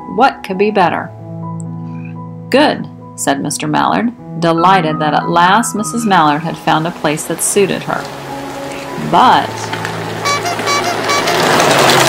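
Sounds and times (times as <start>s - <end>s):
background music: 0.0s - 12.0s
quick high-pitched beeps: 10.2s - 11.3s.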